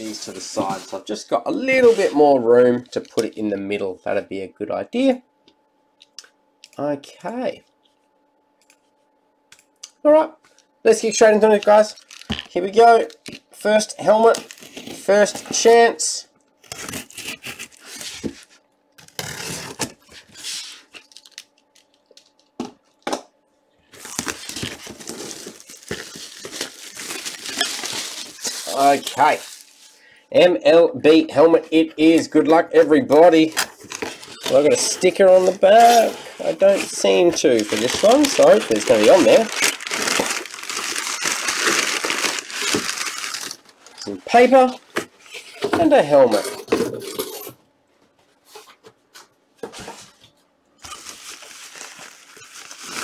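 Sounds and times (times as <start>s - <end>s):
packing paper rustling: 11.5s - 13.4s, 16.6s - 22.5s, 23.8s - 30.1s, 33.1s - 45.4s, 50.8s - 53.0s
plastic wrap crinkling and tearing: 11.5s - 13.6s, 14.2s - 15.7s, 16.6s - 23.0s, 23.9s - 30.0s, 33.3s - 44.5s, 50.8s - 53.0s.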